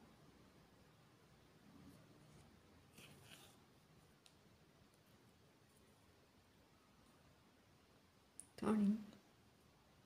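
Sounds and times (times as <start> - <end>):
faint thread rustle: 1.7 - 7.4.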